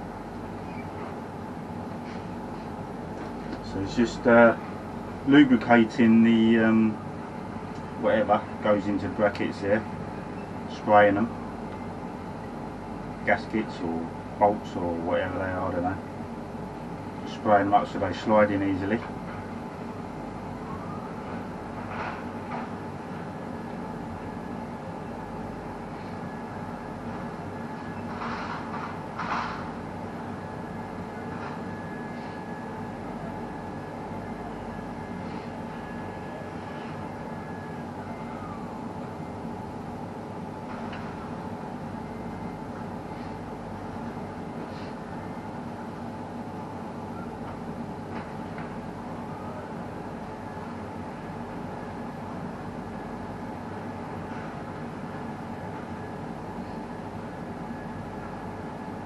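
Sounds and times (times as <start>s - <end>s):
machinery hum: 0.0s - 59.0s.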